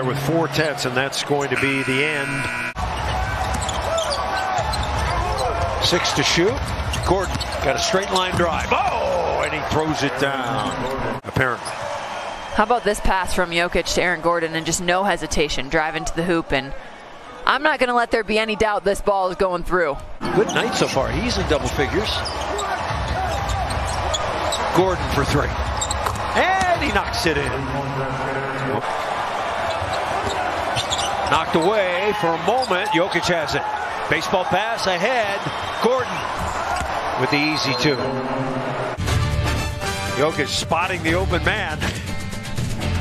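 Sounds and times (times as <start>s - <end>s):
sneakers squeaking: 1.6s - 5.8s, 6.5s - 8.6s, 22.1s - 24.8s, 25.6s - 26.4s, 29.4s - 31.8s, 35.4s - 38.1s.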